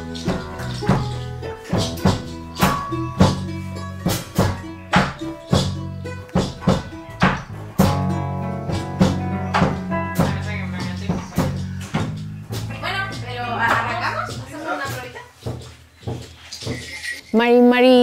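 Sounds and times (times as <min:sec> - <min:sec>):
acoustic guitar strumming chords: 0:00.0 - 0:14.5.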